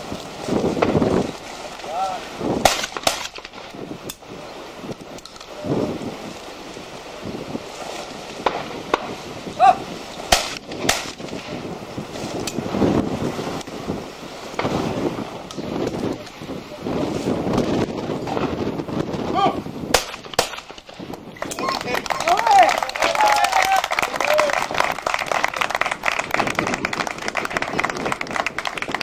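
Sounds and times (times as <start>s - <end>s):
shotgun shots: 2.6s - 3.6s, 10.3s - 11.4s, 19.9s - 20.9s
person calling: 9.6s - 9.9s.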